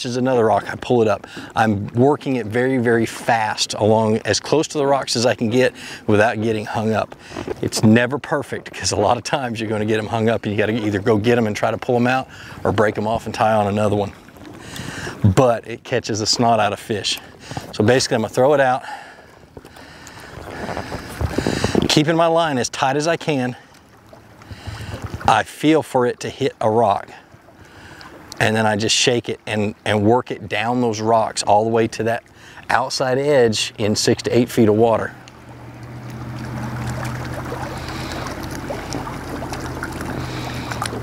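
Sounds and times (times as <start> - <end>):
light wind: 0.0 - 41.0
water lapping against boat: 0.0 - 41.0
steady low hum: 33.3 - 41.0.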